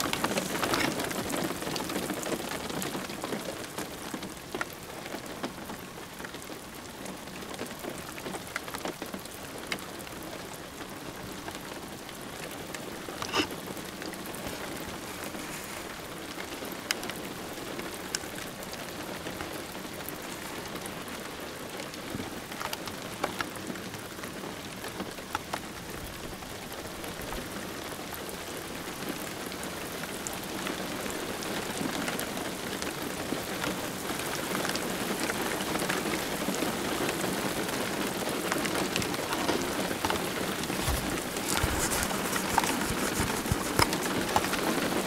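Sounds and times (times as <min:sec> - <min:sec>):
rain falling: 0:00.0 - 0:45.0.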